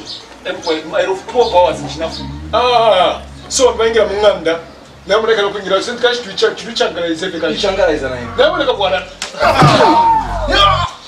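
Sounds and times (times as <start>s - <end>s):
loud wavering cry: 1.2s - 5.7s, 7.1s - 11.0s.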